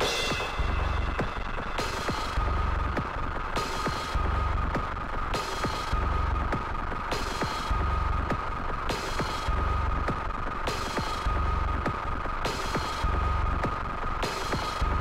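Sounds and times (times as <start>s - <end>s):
high electronic drone: 0.0s - 3.0s.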